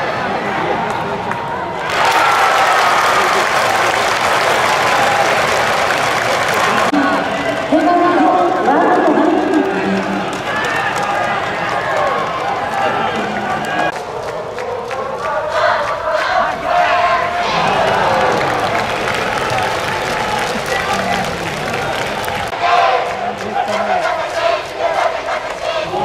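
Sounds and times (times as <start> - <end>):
scattered clapping: 0.9 - 25.8
spectators shouting: 1.6 - 14.2, 15.3 - 26.0
crowd cheering and applauding: 1.8 - 26.0.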